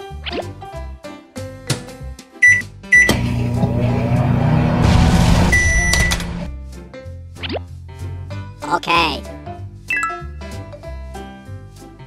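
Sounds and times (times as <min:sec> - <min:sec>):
toy microwave button beeps: 0:02.4 - 0:03.2, 0:05.6 - 0:06.3, 0:09.9 - 0:10.2.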